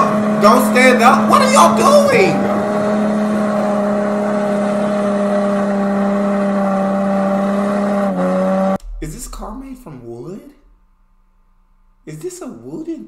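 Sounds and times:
car engine revving high: 0:00.0 - 0:10.8.

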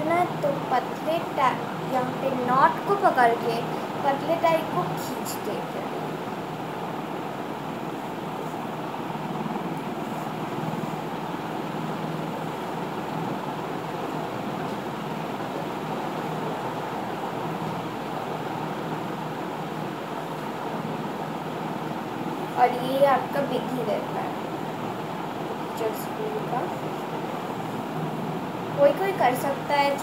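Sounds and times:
steady background rush: 0:00.0 - 0:30.0.

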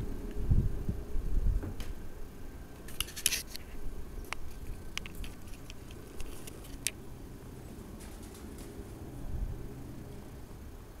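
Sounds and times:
crackling rustles on microphone: 0:02.8 - 0:07.0, 0:07.6 - 0:09.0.

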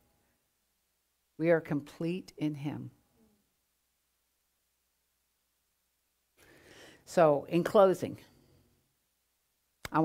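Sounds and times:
faint in-breath: 0:06.4 - 0:07.1.

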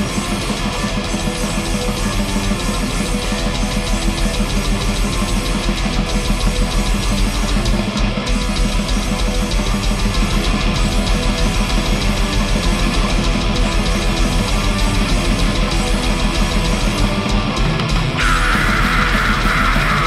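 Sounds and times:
distorted electric guitars: 0:00.0 - 0:20.0
fast drumming: 0:00.0 - 0:20.0.

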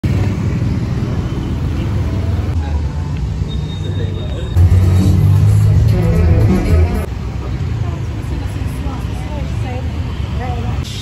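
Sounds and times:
crowd chatter: 0:00.0 - 0:11.0
passing motorbikes and cars: 0:00.0 - 0:11.0.

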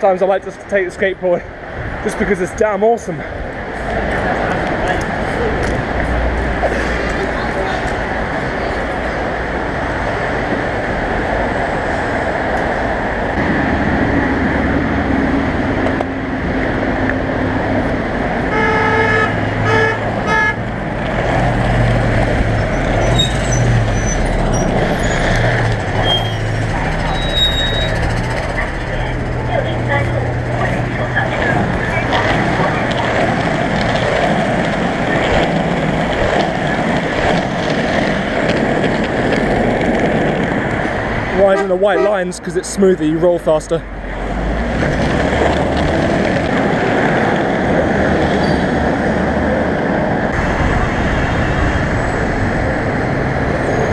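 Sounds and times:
passing vehicles: 0:00.0 - 0:53.9
vehicle horn tooting: 0:18.5 - 0:20.6, 0:41.4 - 0:42.2.

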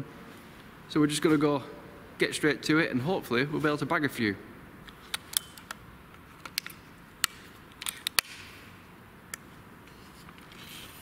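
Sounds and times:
air rifle clicks: 0:04.9 - 0:08.6.

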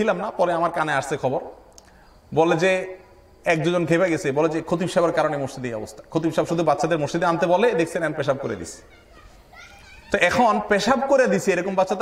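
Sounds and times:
man lecturing over microphone: 0:00.0 - 0:01.6, 0:02.3 - 0:08.8, 0:10.2 - 0:12.0
faint high voices: 0:08.4 - 0:10.4.

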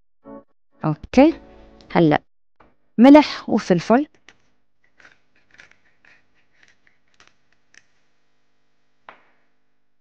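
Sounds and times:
spice grinder rasping: 0:04.2 - 0:08.0.

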